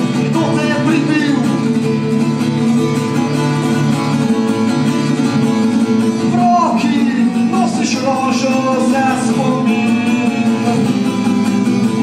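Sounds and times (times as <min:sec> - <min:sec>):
person singing: 0:00.0 - 0:01.9, 0:06.2 - 0:11.3
acoustic guitar chords: 0:00.0 - 0:12.0.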